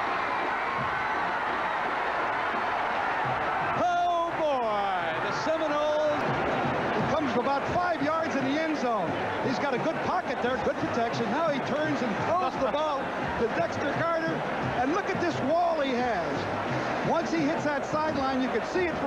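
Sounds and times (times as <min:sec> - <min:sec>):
stadium crowd roaring: 0:00.0 - 0:19.0.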